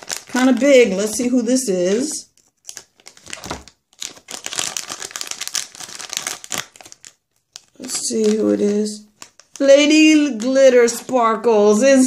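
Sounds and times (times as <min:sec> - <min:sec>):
plastic bag crinkling: 0:00.0 - 0:11.2.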